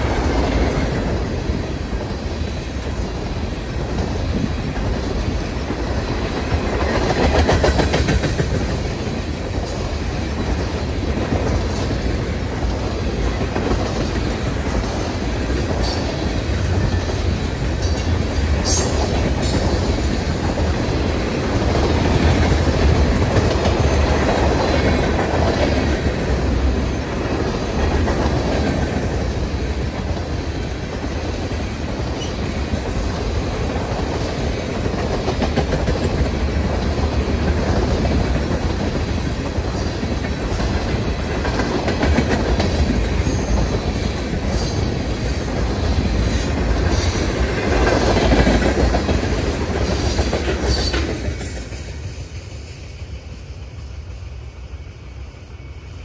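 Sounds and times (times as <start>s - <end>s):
freight train wheels clacking: 0.0s - 54.0s.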